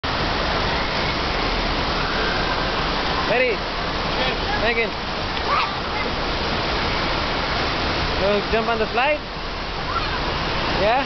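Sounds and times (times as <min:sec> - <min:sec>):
water rushing: 0:00.0 - 0:11.0.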